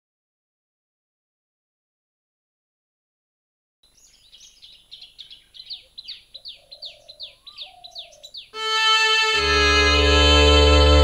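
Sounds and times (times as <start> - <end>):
birds chirping: 3.8 - 10.3
sustained music: 8.6 - 11.0.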